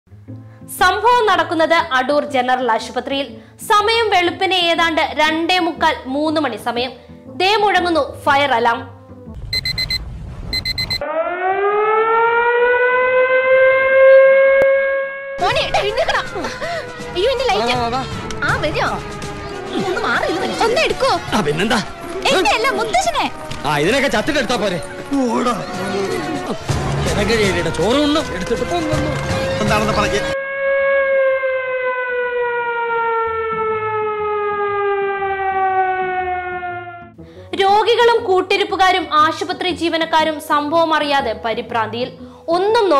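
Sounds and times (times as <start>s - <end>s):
rapid electronic beeping: 9.4s - 11.0s
fire alarm siren wailing: 9.5s - 37.2s.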